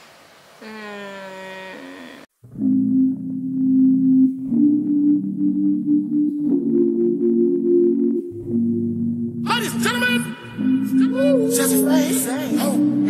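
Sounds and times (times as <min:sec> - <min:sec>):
person saying oh: 0:00.6 - 0:02.3
slow low chords music: 0:02.4 - 0:13.0.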